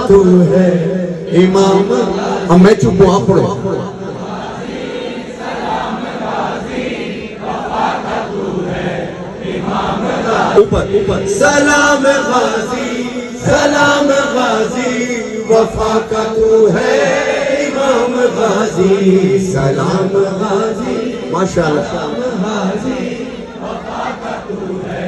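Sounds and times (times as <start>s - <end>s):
men chanting together: 4.0s - 14.9s, 21.9s - 25.0s.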